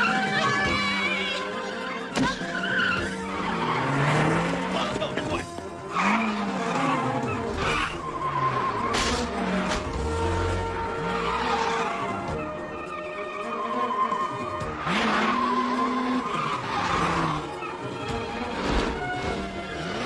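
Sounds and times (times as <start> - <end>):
car engines revving: 0.0 - 20.0
tyres squealing: 0.0 - 20.0.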